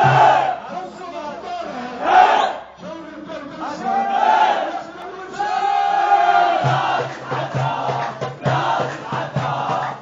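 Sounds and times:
crowd chanting in unison: 0.0s - 0.8s, 1.8s - 2.8s, 3.6s - 10.0s.

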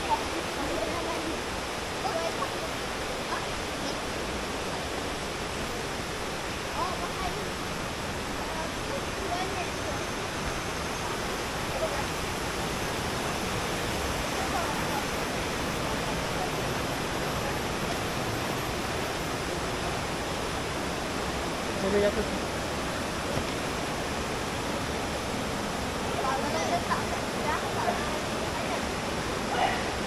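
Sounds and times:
river rushing over rocks: 0.0s - 30.0s
voices in background: 0.0s - 30.0s.

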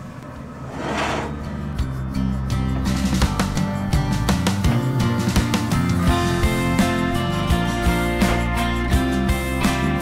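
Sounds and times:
skillet scraping metal grates: 0.6s - 1.4s
background music: 1.0s - 10.0s.

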